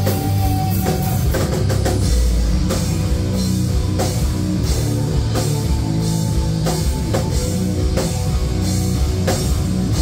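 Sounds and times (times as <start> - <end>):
bass guitar: 0.0 - 10.0
distorted electric guitar: 0.0 - 10.0
drum kit with cymbal hits: 0.0 - 10.0.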